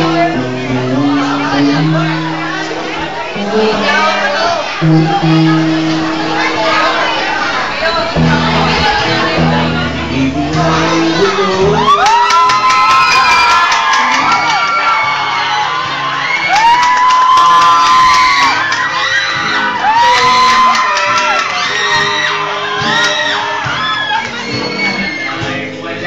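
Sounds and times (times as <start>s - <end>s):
person singing into a microphone: 0.0s - 7.1s, 7.8s - 12.7s
acoustic guitar band: 0.0s - 26.0s
high voices whooping and cheering: 1.2s - 25.7s.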